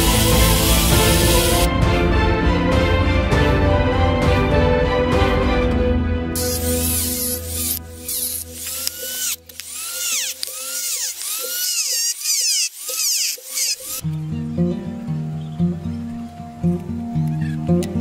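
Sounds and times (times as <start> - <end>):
rotary tool cutting wood: 0.0 - 1.7, 6.4 - 14.0
background music: 0.0 - 11.3, 13.9 - 18.0.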